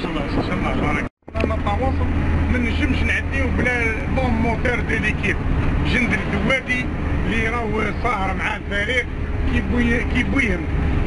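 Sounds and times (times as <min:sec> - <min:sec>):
men talking: 0:00.0 - 0:10.8
bus engine drone: 0:00.0 - 0:11.0.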